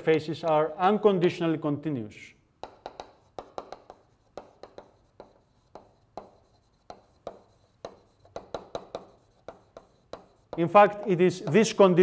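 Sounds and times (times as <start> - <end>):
chalk writing on a blackboard: 2.6 - 12.0.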